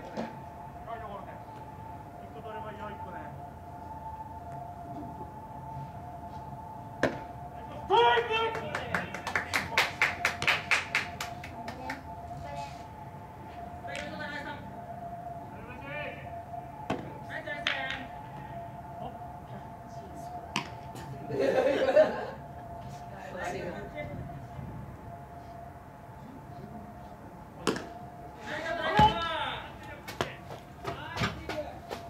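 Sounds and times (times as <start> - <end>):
steady high hum: 0.0 - 32.0
rapid claps: 8.2 - 12.1
players shouting: 28.5 - 31.4.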